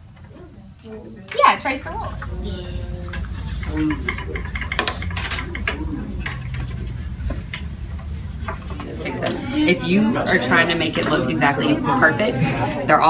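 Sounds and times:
rulers and pencils tapping desks: 0.0s - 11.7s
faint classroom voices: 0.0s - 13.0s
steady low hum: 0.0s - 13.0s.

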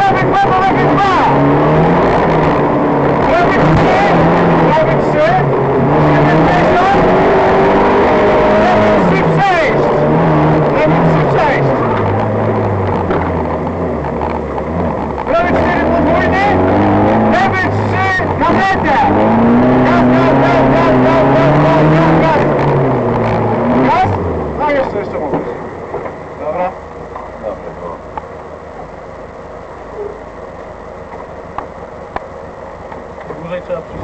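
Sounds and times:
car engine revving: 0.0s - 34.0s.

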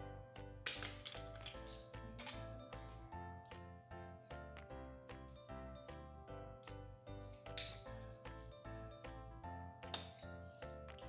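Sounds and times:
background music with steady beat: 0.0s - 11.0s
plastic toy bricks rattling: 0.7s - 2.5s.

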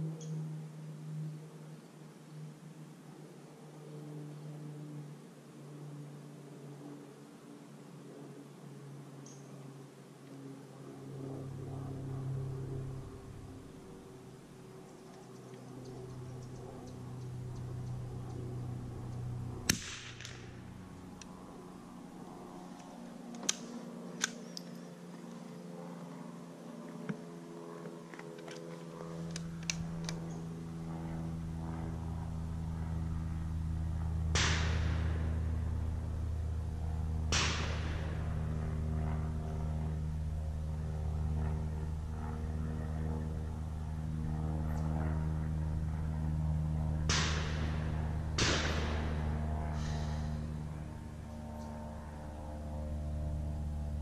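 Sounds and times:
rifle shots with echo: 19.7s - 20.6s, 34.3s - 35.5s, 37.3s - 38.3s, 48.4s - 49.3s.

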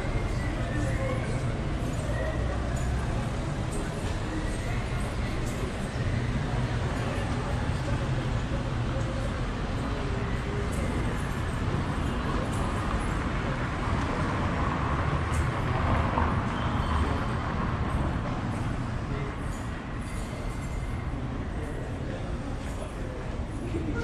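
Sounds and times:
traffic rumble: 0.0s - 24.0s
voices of passers-by: 0.0s - 24.0s.

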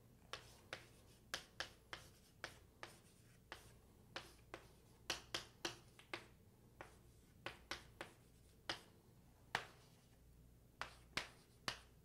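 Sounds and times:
pen tapping on board: 0.3s - 8.9s, 9.5s - 9.8s, 10.8s - 11.9s.

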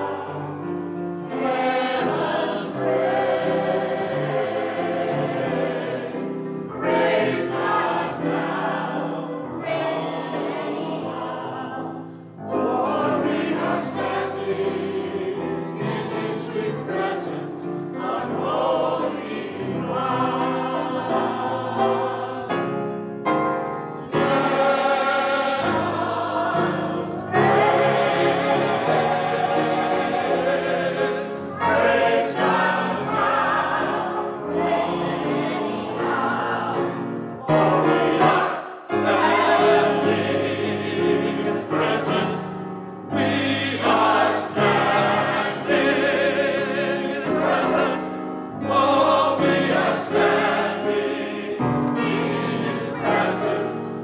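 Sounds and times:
mixed choir singing: 0.0s - 23.2s, 23.9s - 54.0s
piano accompaniment: 0.0s - 54.0s.

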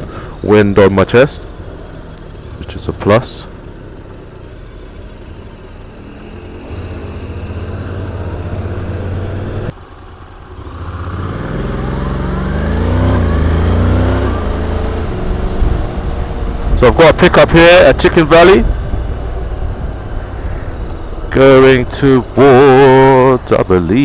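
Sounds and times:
motorcycle engine accelerating: 1.1s - 24.0s.

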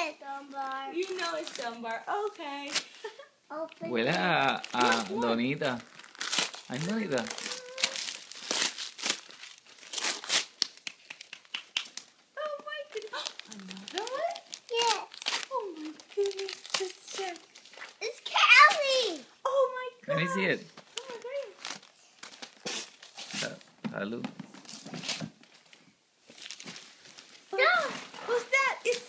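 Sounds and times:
wrapping paper crinkling and tearing: 0.0s - 19.2s, 20.9s - 23.7s, 24.6s - 29.0s.

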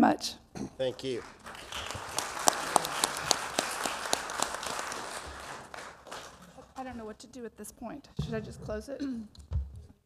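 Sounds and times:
audience applauding: 0.8s - 6.9s.

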